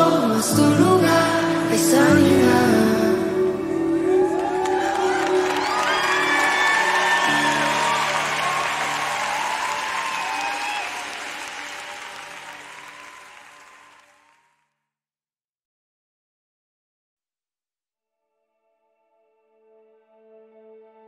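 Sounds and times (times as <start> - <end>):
audience applauding and cheering: 3.8 - 14.5.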